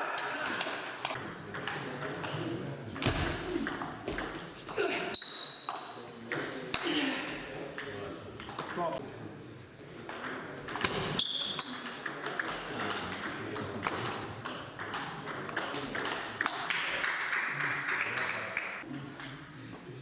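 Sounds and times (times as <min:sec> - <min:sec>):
ping pong ball clicking off bats: 0:11.7 - 0:16.6
ping pong ball bouncing on table: 0:11.7 - 0:16.7.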